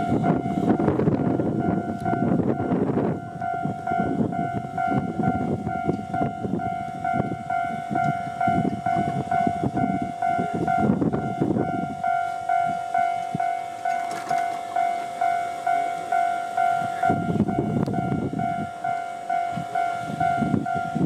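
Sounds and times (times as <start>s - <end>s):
electric train rumbling on rails: 0.0s - 21.0s
level crossing bell ringing: 1.6s - 21.0s.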